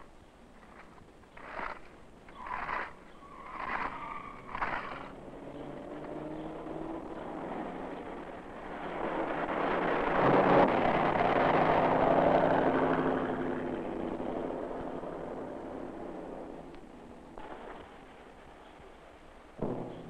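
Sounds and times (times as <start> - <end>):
vehicle engine passing: 2.4 - 16.2.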